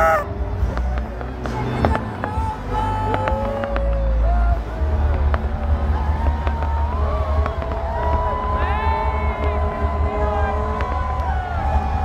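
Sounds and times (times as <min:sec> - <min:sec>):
people shouting: 0:00.0 - 0:00.3, 0:05.6 - 0:12.0
fireworks bangs and pops: 0:00.0 - 0:12.0
low rumble: 0:00.0 - 0:12.0.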